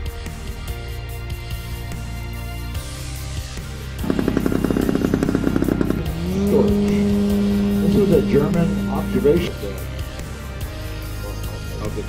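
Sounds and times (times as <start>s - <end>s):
music: 0.0s - 12.0s
model plane engine: 4.0s - 10.0s.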